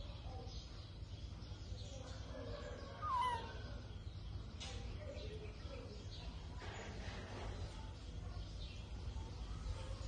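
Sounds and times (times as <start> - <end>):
baby monkey crying: 3.0 - 3.6.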